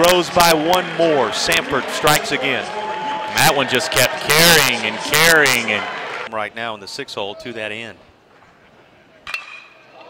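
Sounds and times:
metal bat hitting ball: 9.3 - 9.8.

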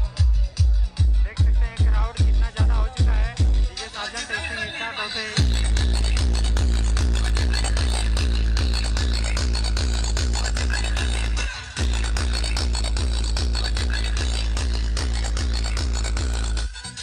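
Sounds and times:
electronic dance music: 0.0 - 17.0
falling bass sweep: 5.4 - 16.7.

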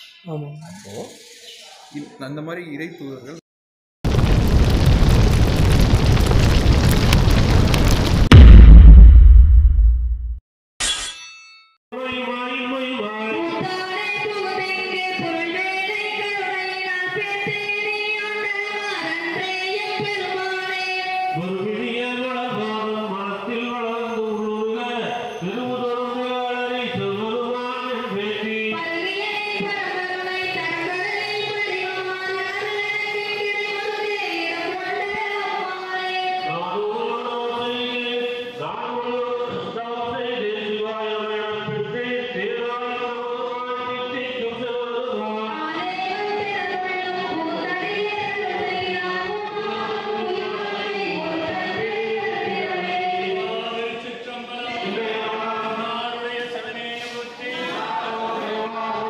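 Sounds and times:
deep boom: 4.1 - 10.4
metallic clang: 10.8 - 11.7.

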